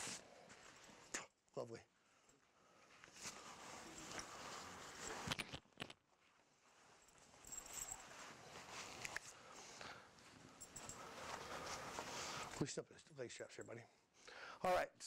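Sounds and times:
harness straps rustling: 0:02.9 - 0:12.7.

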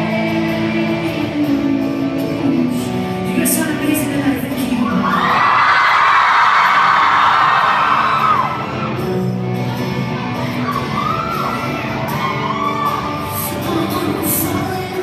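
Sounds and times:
crowd singing and shouting: 0:00.0 - 0:15.0
live rock band playing: 0:00.0 - 0:15.0.

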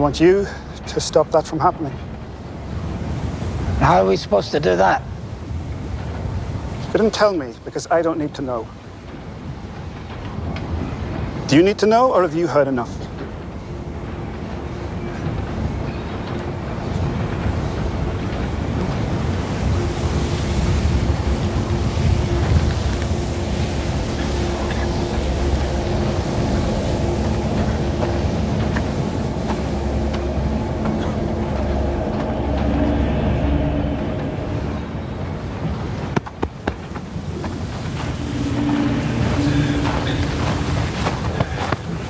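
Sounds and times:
low mechanical rumble: 0:13.2 - 0:42.0.

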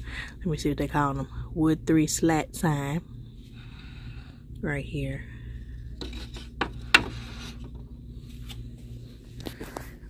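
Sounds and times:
wood rubbing and scraping: 0:06.0 - 0:07.8.

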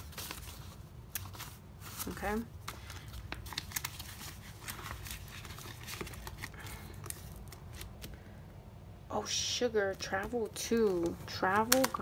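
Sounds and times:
paper rustling: 0:00.0 - 0:08.2, 0:10.0 - 0:12.0.

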